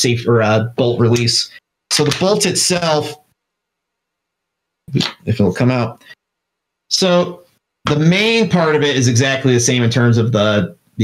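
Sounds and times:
person talking: 0:00.0 - 0:03.2, 0:04.9 - 0:06.1, 0:06.9 - 0:10.8.

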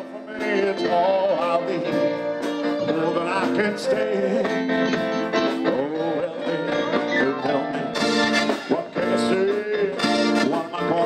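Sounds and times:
guitar: 0:00.0 - 0:11.0
person singing through pa: 0:00.0 - 0:11.0
steady drum beat: 0:00.0 - 0:11.0.

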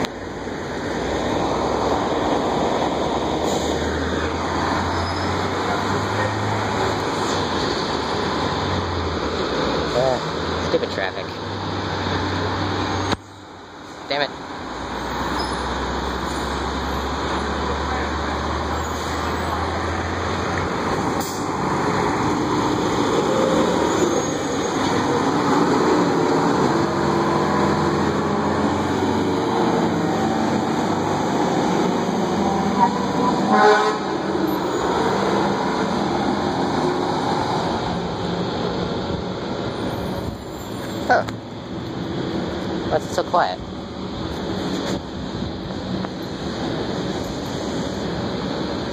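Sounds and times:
street traffic noise: 0:00.0 - 0:48.9.

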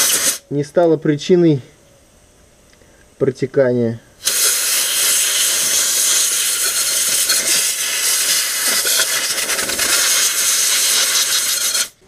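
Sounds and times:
compressed air jet hissing: 0:00.0 - 0:00.4, 0:04.2 - 0:12.0.

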